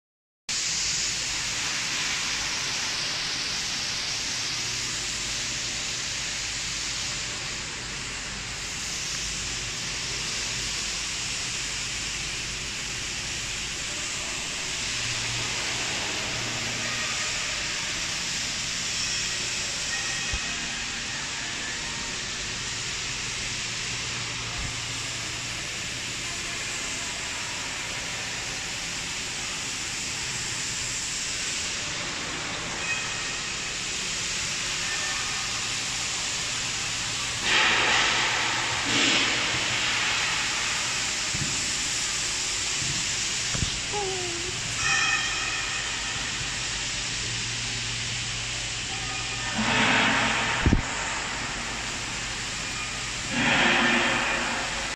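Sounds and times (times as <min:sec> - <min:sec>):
factory hall background hiss: 0:00.5 - 0:54.9.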